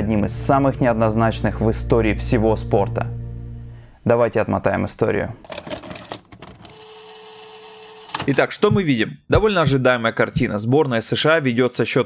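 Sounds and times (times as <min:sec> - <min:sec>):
tape hiss: 0:00.5 - 0:04.9
tape rewinding whir: 0:05.8 - 0:08.5.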